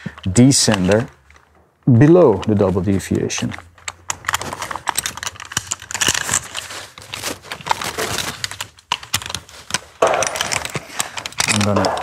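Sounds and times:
metallic clicks and rattles: 3.4 - 12.0.

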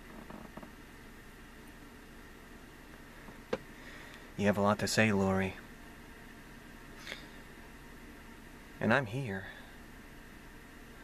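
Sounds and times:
man exhaling smoke: 7.0 - 7.4.

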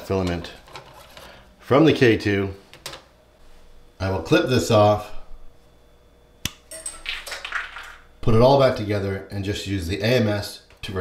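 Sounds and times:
rustling of handling: 0.2 - 1.4.

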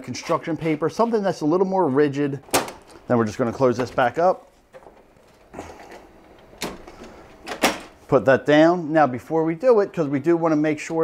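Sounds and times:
copier document feeder clunks: 2.4 - 3.0, 6.1 - 8.0.

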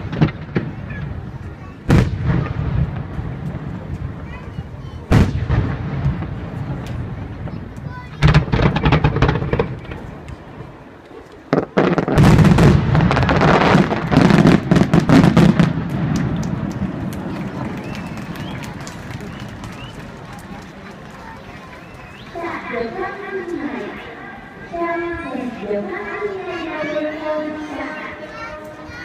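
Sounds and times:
fireworks bangs and crackles: 0.0 - 24.0.

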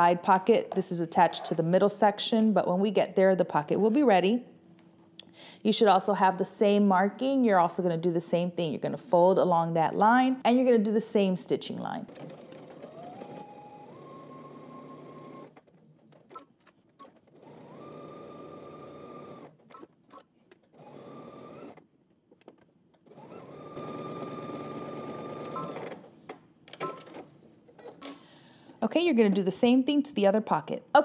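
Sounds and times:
sewing machine motor whine: 12.1 - 15.6, 17.0 - 19.9, 20.8 - 21.8, 23.1 - 26.1.

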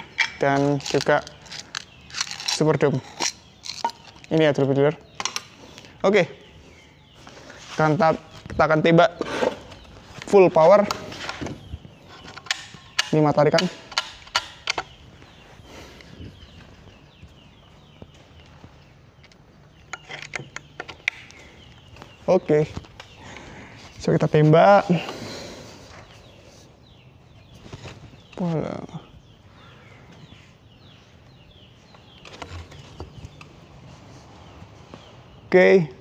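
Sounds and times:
small birds chirping: 0.0 - 36.0.

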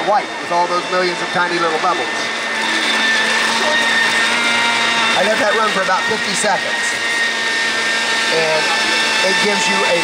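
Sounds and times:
blender motor whining: 0.0 - 10.0.

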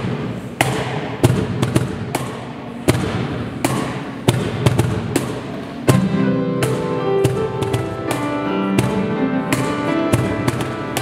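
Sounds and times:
sharp percussive knocks: 0.6 - 11.0.

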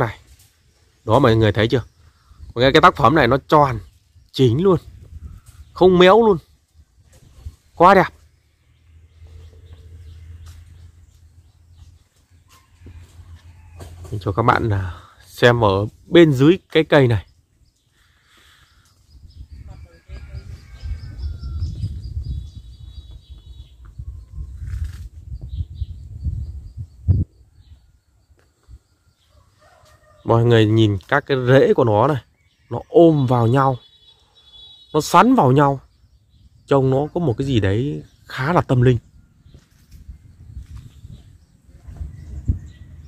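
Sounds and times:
small birds chirping: 0.0 - 43.0
low rumble on microphone: 19.1 - 27.9, 39.0 - 43.0.

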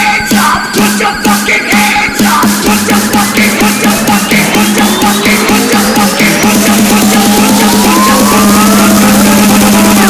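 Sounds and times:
held synth note: 0.0 - 10.0
rising synth sweep: 1.7 - 10.0.

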